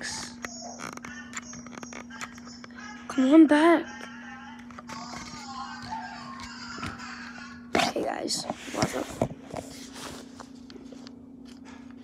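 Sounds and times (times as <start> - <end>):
faint electronic music: 0.0 - 7.7
steady low hum: 0.0 - 12.0.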